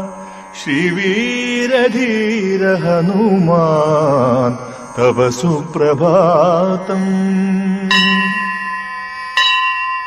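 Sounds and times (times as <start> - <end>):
chanted devotional verses: 0.0 - 9.2
low drone: 0.0 - 10.0
bell ringing: 7.9 - 10.0.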